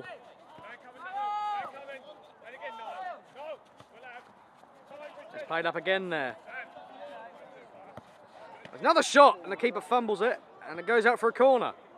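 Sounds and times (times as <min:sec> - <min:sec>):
players shouting: 0:00.0 - 0:09.9.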